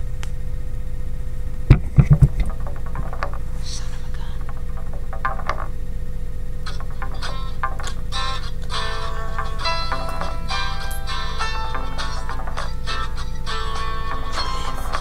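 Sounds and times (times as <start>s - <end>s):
low electrical hum: 0.0s - 15.0s
loud thuds: 1.7s - 5.9s.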